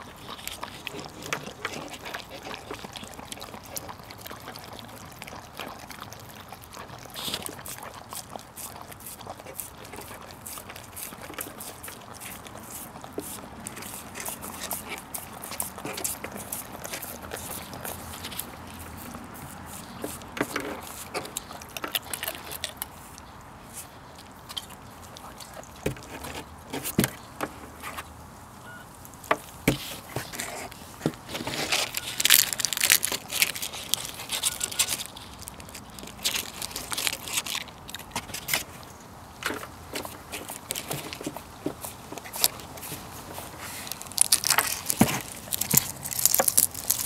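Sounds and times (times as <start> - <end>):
dogs licking and chewing: 0.0 - 47.0.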